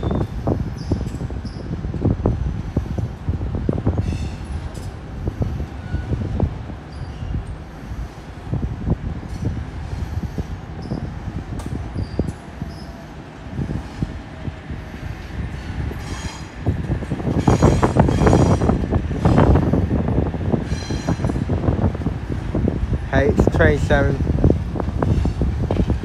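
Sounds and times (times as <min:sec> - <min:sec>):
high wheel squeal: 0:00.0 - 0:01.8, 0:06.9 - 0:07.4, 0:10.8 - 0:11.1, 0:12.0 - 0:13.0, 0:16.0 - 0:16.6
train rumbling past: 0:00.0 - 0:26.0
wheels clattering over rail joints: 0:15.2 - 0:22.7, 0:24.4 - 0:26.0.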